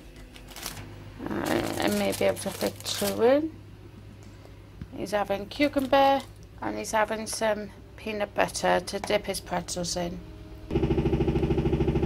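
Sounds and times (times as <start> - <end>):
pulsing mechanical hum: 0.0 - 12.0.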